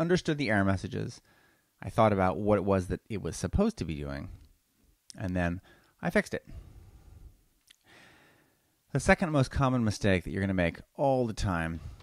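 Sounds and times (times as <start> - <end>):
person breathing: 1.2 - 1.8, 5.6 - 8.8, 11.8 - 12.0
person speaking: 1.8 - 4.5, 5.1 - 6.6, 8.9 - 12.0.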